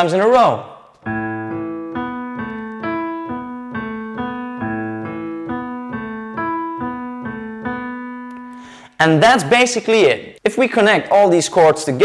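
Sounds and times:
slow piano arpeggio: 1.0s - 8.8s.

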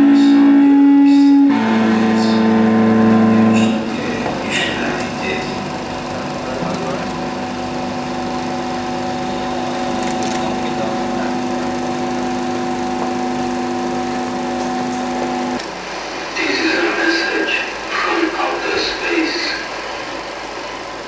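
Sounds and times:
sustained musical drone: 0.0s - 19.6s.

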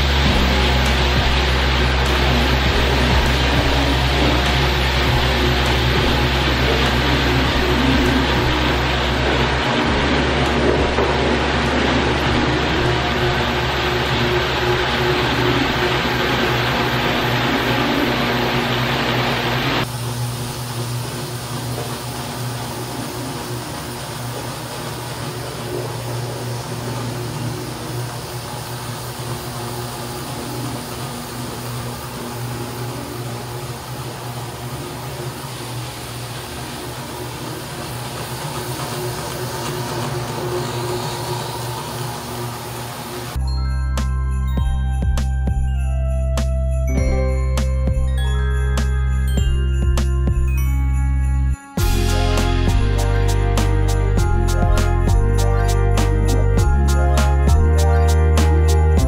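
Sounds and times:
floor machines scrubbing: 0.0s - 43.6s, 51.8s - 59.0s
motor hum with wet scrubbing hiss: 0.0s - 44.4s.

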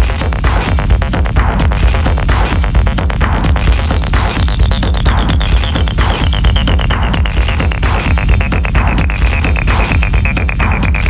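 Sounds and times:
fast repeating percussion: 0.0s - 11.0s
throbbing bass line: 0.0s - 11.0s.

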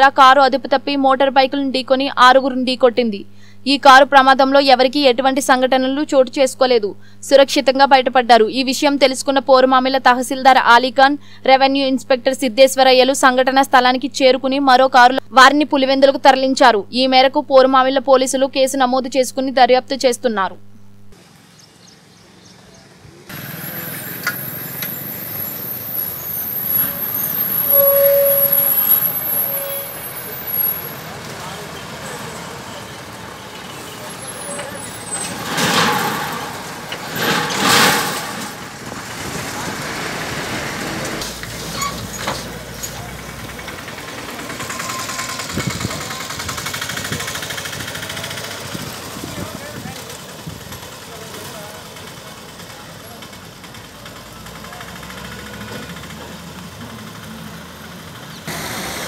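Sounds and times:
vehicles passing: 21.0s - 59.0s.

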